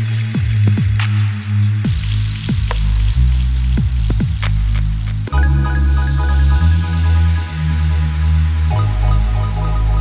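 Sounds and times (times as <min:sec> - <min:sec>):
electronic music with heavy bass: 0:00.0 - 0:10.0
deep kick drums dropping in pitch: 0:01.8 - 0:05.3.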